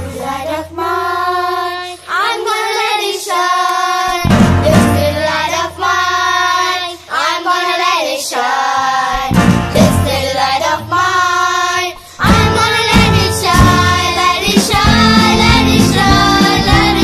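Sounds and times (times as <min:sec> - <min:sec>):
children's choir singing: 0:00.0 - 0:17.0
musical accompaniment with low bass: 0:09.3 - 0:10.2, 0:14.7 - 0:17.0.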